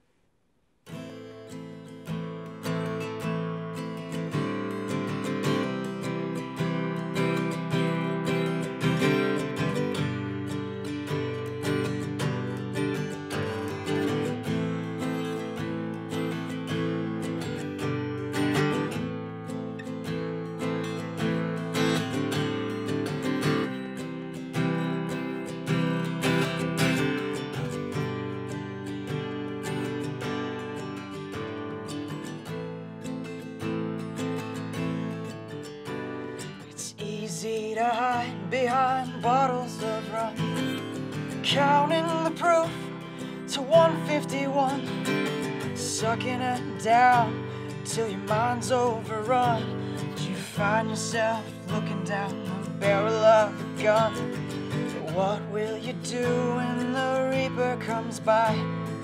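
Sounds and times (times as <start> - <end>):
acoustic guitar strumming: 0.8 - 59.0.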